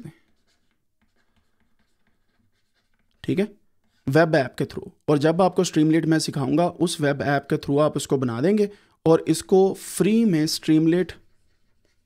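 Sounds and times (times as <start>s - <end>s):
stylus writing on tablet: 0.0s - 4.3s, 9.5s - 12.0s.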